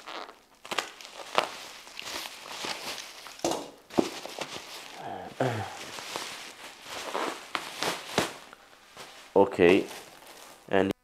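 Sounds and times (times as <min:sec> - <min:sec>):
bubble wrap cracks: 0:00.0 - 0:10.8
bubble wrap rustling and crinkling: 0:00.0 - 0:10.9.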